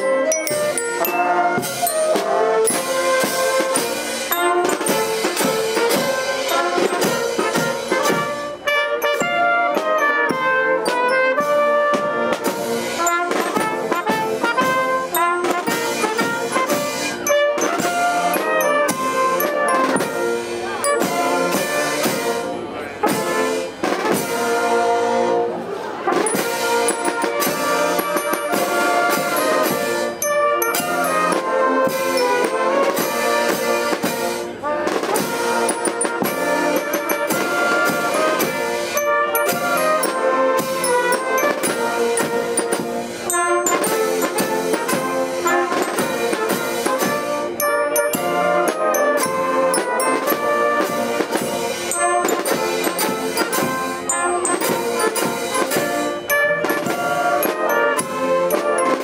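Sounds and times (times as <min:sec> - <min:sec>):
wind band playing: 0:00.0 - 0:59.0.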